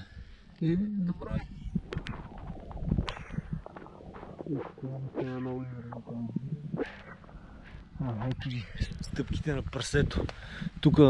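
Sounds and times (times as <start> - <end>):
man speaking: 4.4 - 7.2.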